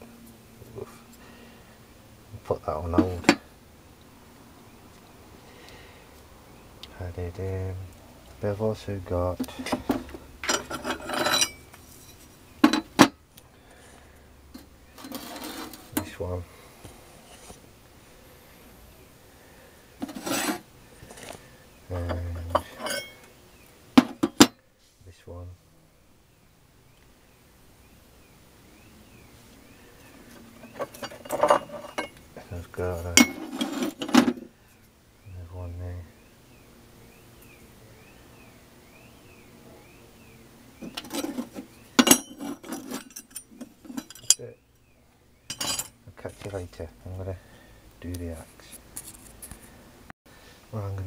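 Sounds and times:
metal scraping on metal: 0:02.8 - 0:03.4, 0:09.4 - 0:13.1, 0:14.6 - 0:16.2, 0:20.0 - 0:21.3, 0:21.9 - 0:23.3, 0:30.2 - 0:34.5, 0:40.8 - 0:44.6, 0:45.5 - 0:46.0
steel knife blanks clinking: 0:42.0 - 0:44.4.

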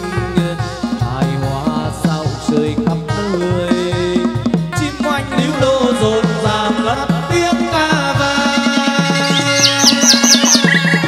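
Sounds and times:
live band ritual music: 0:00.0 - 0:11.0
bird chirping: 0:09.1 - 0:11.0.

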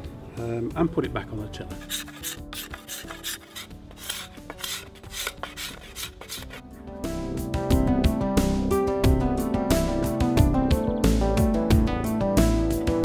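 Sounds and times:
steel scraper rasping on wood: 0:01.8 - 0:06.6.

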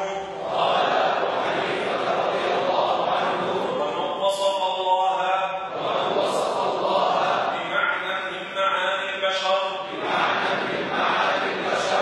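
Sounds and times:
man chanting into a microphone: 0:00.0 - 0:00.4, 0:02.8 - 0:10.0.

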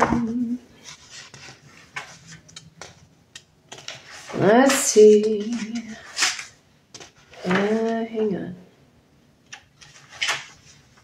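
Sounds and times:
paper rustling and clicks: 0:01.1 - 0:08.0, 0:09.5 - 0:11.0.

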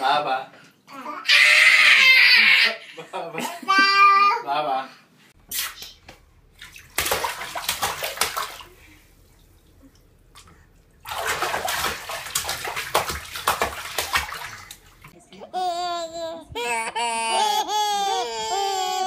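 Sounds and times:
babies splashing bath water: 0:05.5 - 0:15.2.

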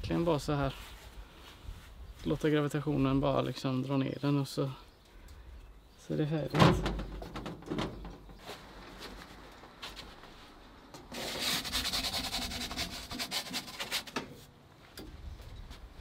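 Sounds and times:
pizza peel scraping on stone: 0:11.1 - 0:14.2.

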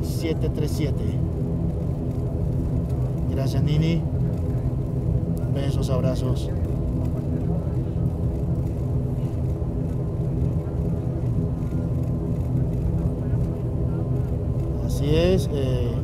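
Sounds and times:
turboprop engines droning: 0:00.0 - 0:16.0.

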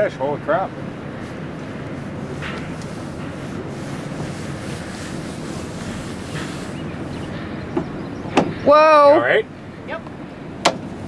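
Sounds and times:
river water washing around boat: 0:00.0 - 0:11.0
wind buffeting microphone: 0:00.0 - 0:11.0.

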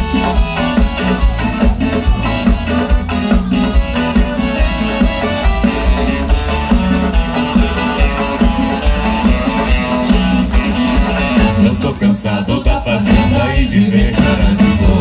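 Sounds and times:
accordion: 0:00.0 - 0:15.0
bass and drums beat: 0:00.0 - 0:15.0
strummed guitars: 0:00.0 - 0:15.0.

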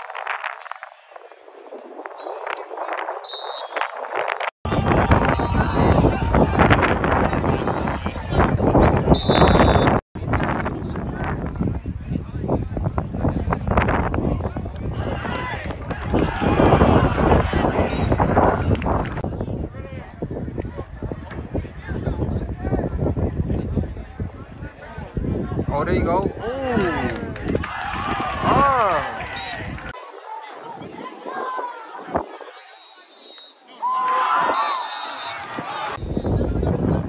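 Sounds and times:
wind buffeting microphone: 0:00.0 - 0:32.6, 0:35.3 - 0:37.0
indistinct shouts and voices: 0:04.7 - 0:09.1, 0:23.8 - 0:37.0
players talking over each other: 0:04.7 - 0:09.1, 0:09.7 - 0:37.0.

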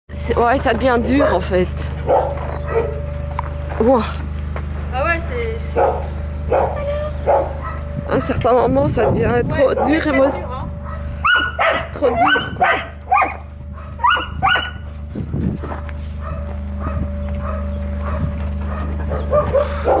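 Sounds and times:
dog barking: 0:01.1 - 0:03.0, 0:05.8 - 0:08.3, 0:09.0 - 0:14.8, 0:16.2 - 0:20.0.

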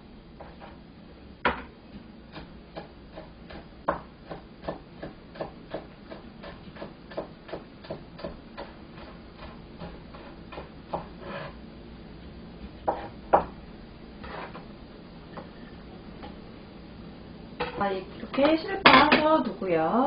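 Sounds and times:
knife chopping on cutting board: 0:02.3 - 0:11.6, 0:12.8 - 0:13.6.

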